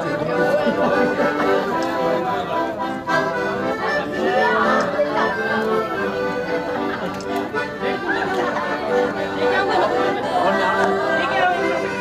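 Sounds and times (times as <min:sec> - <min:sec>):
background music with held notes: 0:00.0 - 0:12.0
crowd chattering: 0:00.0 - 0:12.0.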